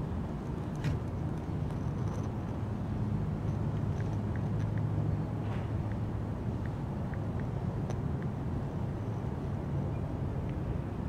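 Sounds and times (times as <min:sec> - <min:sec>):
outdoor background hum: 0:00.0 - 0:11.0.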